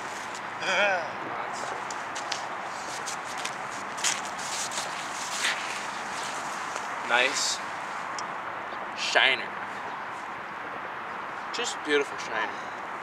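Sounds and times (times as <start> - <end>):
outdoor background noise: 0.0 - 13.0
light handling clicks and scuffs: 1.6 - 7.0.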